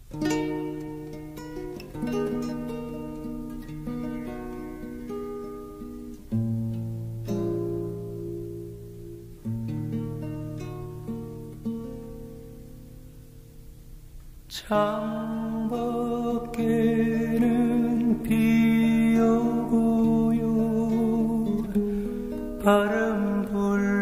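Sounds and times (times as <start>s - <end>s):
acoustic guitar picking chords: 0.0s - 24.0s.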